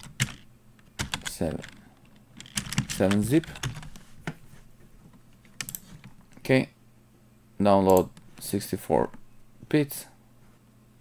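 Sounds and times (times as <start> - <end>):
computer keyboard typing: 0.0 - 4.0, 5.4 - 6.2.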